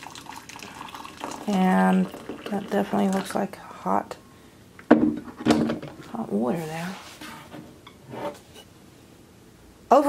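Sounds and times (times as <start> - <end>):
kettle knocking onto base: 4.9 - 5.8.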